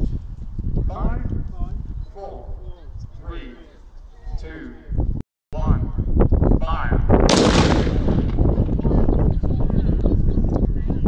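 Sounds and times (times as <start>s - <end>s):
field gun blast: 7.3s - 8.8s
rumbling echo: 7.3s - 9.8s.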